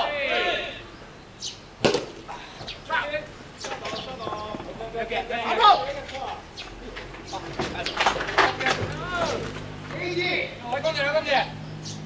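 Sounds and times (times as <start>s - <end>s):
person shouting: 0.0s - 0.9s
sharp smack: 1.8s - 2.2s.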